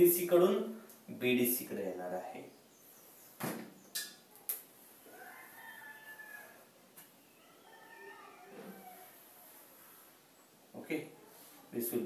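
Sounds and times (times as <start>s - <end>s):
distant rooster crowing: 5.0s - 9.5s.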